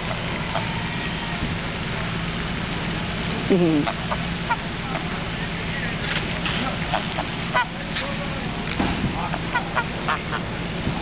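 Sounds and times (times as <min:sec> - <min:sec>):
goose honking: 0:00.0 - 0:01.4, 0:03.6 - 0:08.2, 0:09.2 - 0:10.5.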